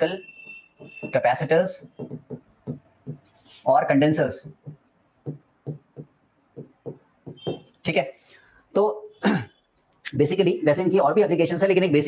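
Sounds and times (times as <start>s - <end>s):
man clearing his throat: 9.2s - 9.6s.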